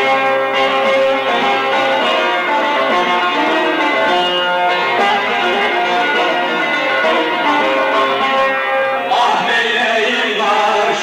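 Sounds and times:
long-necked lute plucked notes: 0.0 - 9.2.

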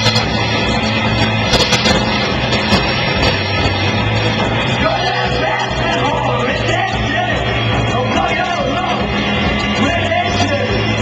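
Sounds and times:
drums with cymbal and snare hits: 0.0 - 11.0
guitar and bass notes: 0.0 - 11.0.

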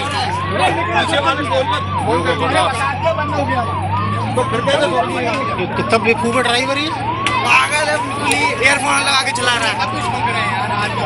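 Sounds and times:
electronic siren yelping: 0.0 - 11.0.

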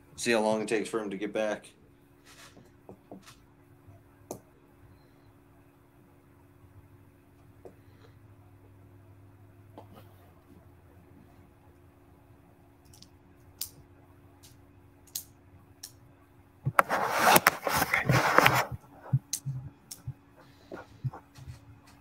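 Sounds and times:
microphone handling clicks: 16.6 - 22.0.

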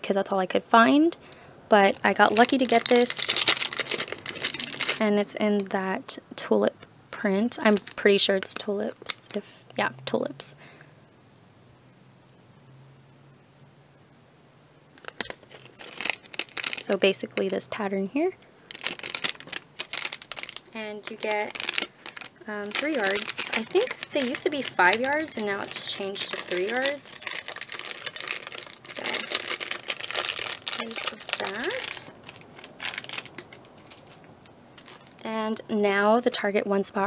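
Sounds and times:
plastic packaging crinkling: 1.7 - 5.8, 7.5 - 9.5, 15.0 - 35.3.

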